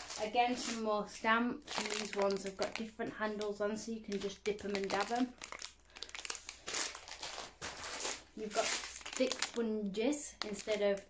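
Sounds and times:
plastic packaging crinkling: 0:00.0 - 0:00.9, 0:01.6 - 0:11.0.

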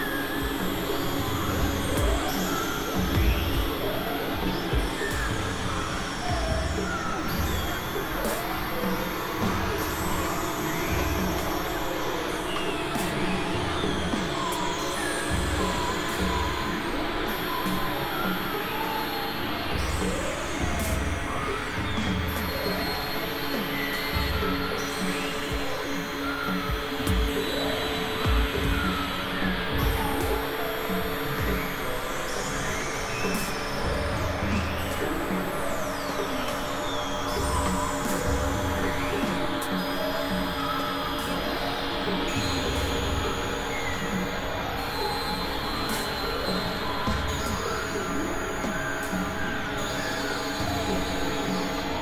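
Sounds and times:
pulsing bass: 0:00.0 - 0:11.7, 0:26.6 - 0:31.9
steady drones: 0:00.0 - 0:52.0.

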